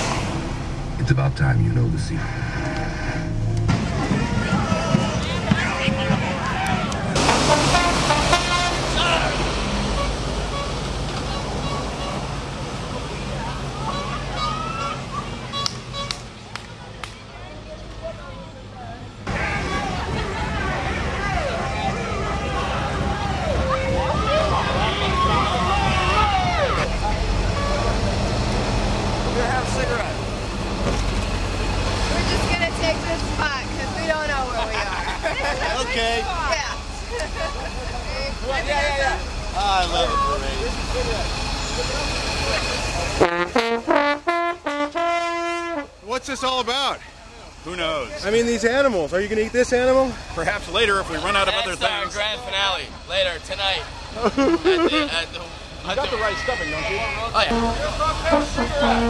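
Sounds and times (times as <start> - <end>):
engine idling with low rumble: 0.0 - 15.6, 29.2 - 59.0
street traffic: 0.0 - 59.0
voices: 0.0 - 59.0
people talking: 1.0 - 2.4, 3.7 - 7.3, 8.7 - 10.1, 29.2 - 30.2, 32.1 - 43.3, 46.0 - 59.0
short horn toots: 57.4 - 59.0.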